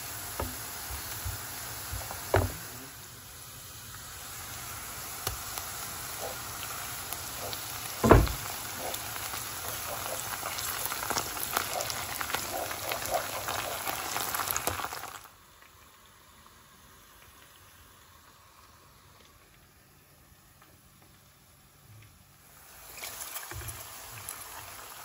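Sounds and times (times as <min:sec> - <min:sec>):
onions sizzling in oil: 0:00.0 - 0:20.0, 0:22.4 - 0:25.0
loud thump: 0:02.3 - 0:02.6, 0:08.0 - 0:08.5
wooden spoon stirring: 0:07.3 - 0:15.1.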